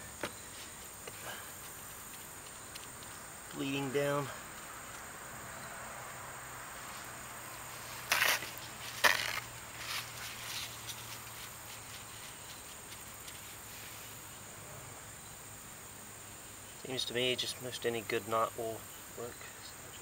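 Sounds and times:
constant high whine: 0:00.0 - 0:20.0
insect chorus: 0:00.0 - 0:20.0.

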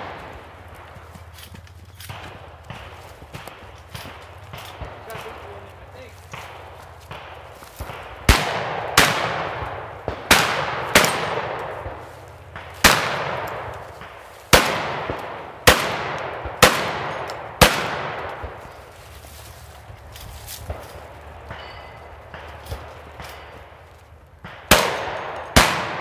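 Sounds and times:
shotgun shots echoing: 0:00.0 - 0:18.9, 0:20.5 - 0:23.8, 0:24.4 - 0:26.0.

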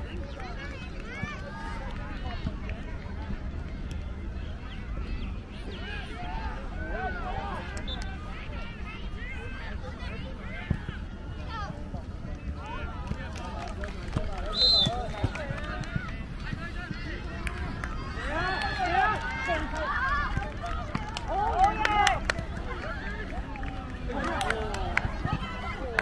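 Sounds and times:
players and spectators calling out: 0:00.1 - 0:26.0.

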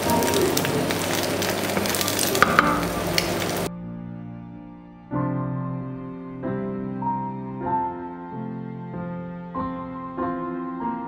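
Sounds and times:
egg sizzling in a frying pan: 0:00.0 - 0:03.7
soft background music: 0:00.0 - 0:11.0.

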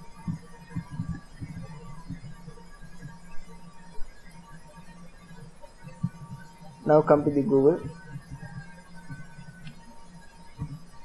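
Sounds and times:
low hum: 0:00.0 - 0:04.0.

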